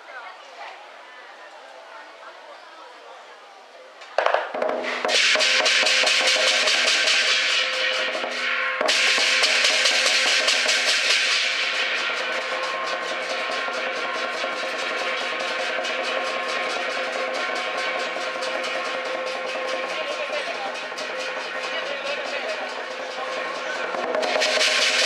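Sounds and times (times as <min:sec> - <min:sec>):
rapid drum roll: 0:04.2 - 0:25.0
clashing cymbals: 0:04.6 - 0:25.0.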